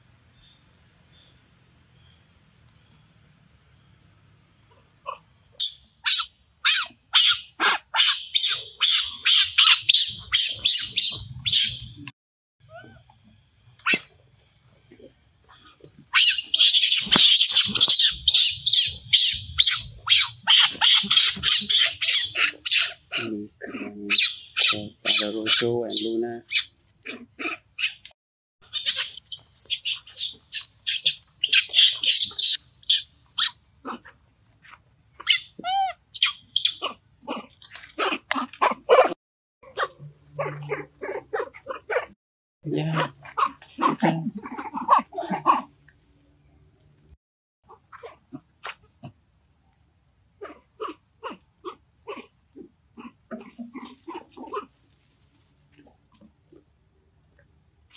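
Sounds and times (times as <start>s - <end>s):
young monkeys screaming: 5.1s - 12.0s, 13.8s - 14.1s, 15.6s - 34.1s, 35.2s - 39.2s, 42.8s - 45.7s, 53.0s - 54.7s
lower monkey cries: 6.0s - 11.8s, 16.1s - 28.0s, 28.7s - 34.0s, 42.7s - 45.7s.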